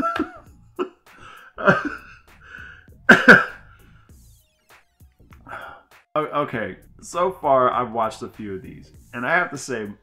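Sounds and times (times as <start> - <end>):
man laughing hard: 0.0 - 3.8
breathy sounds: 1.1 - 3.0, 5.4 - 5.9.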